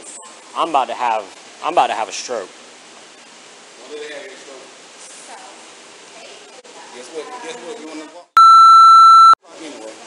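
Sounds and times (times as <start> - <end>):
steady electronic beep: 8.4 - 9.4.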